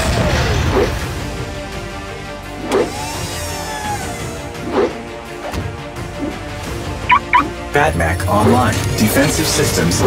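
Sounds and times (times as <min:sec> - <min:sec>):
cartoon background music: 0:02.0 - 0:10.0.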